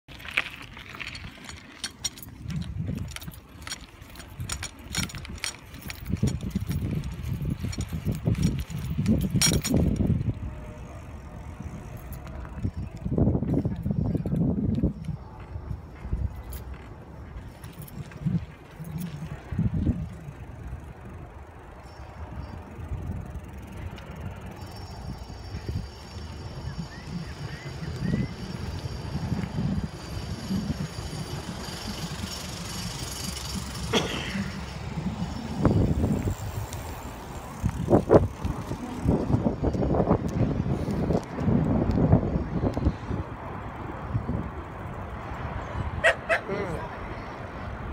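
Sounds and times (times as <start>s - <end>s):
wind rumbling on microphone: 0.1s - 47.9s.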